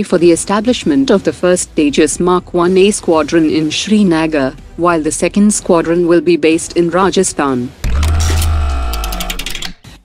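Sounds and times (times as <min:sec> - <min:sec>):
ringing chord: 0:07.9 - 0:09.7.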